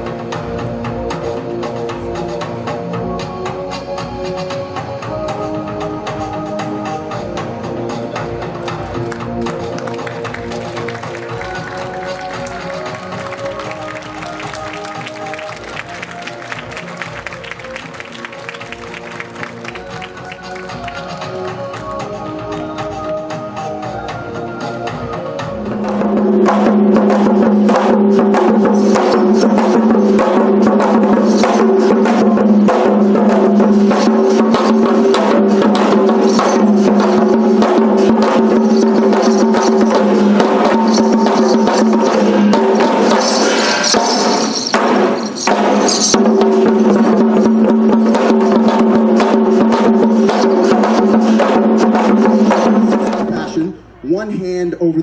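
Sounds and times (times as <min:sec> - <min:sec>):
fast rhythmic drumming: 0:08.1 - 0:23.5, 0:25.7 - 0:53.7.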